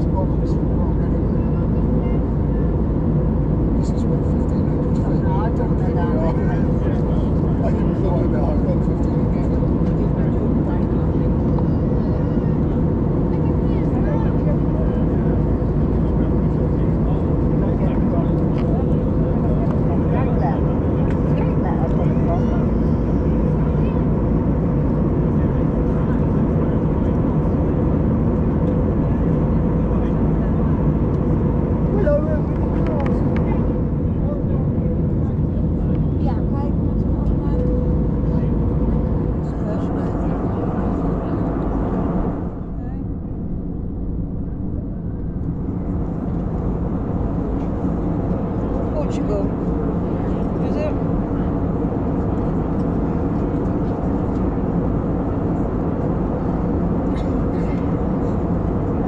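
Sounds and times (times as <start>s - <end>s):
airplane cabin engine drone: 0.0s - 59.0s
steady hum: 0.0s - 59.0s.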